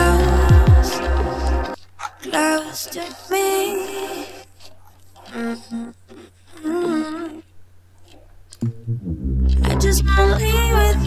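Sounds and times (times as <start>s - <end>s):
person singing with reverb: 0.0s - 4.3s
faint low hum: 0.0s - 11.0s.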